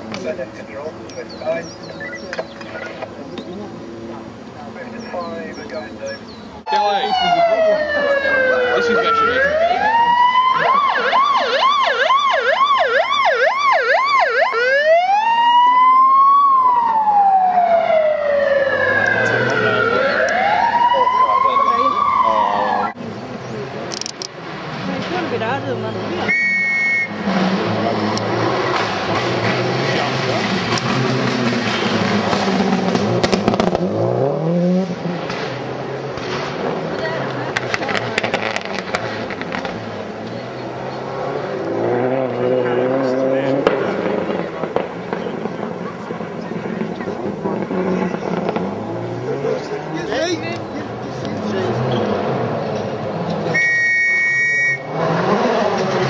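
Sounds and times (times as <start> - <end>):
people talking: 0.0 - 11.6, 18.8 - 27.0, 29.4 - 30.8, 36.8 - 39.0, 40.1 - 52.2
siren yelping and wailing: 6.7 - 23.0
short beep-like tone: 26.3 - 27.2, 53.6 - 54.9.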